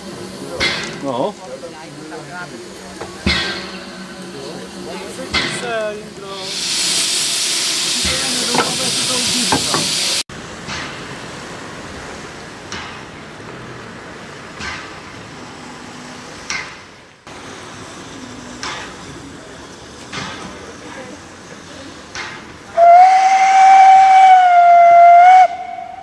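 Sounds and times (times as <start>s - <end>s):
voices: 0.0s - 10.2s, 17.6s - 24.0s
loud hiss of steam: 0.0s - 26.0s
steam locomotive chuffs: 0.0s - 26.0s.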